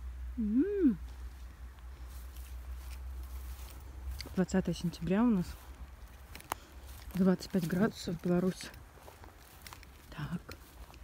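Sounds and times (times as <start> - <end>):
woman humming mmm: 0.3 - 1.2.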